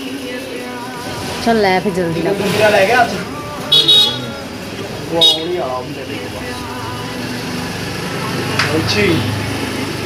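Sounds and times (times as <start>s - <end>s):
vehicle horn honk: 3.6s - 4.5s, 5.2s - 5.8s.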